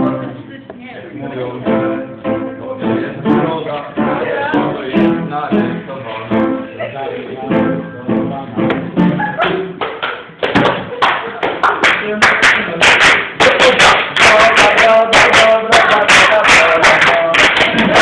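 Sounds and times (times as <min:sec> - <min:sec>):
acoustic guitar playing: 0:00.0 - 0:09.8
person singing: 0:01.2 - 0:09.8, 0:12.0 - 0:18.0.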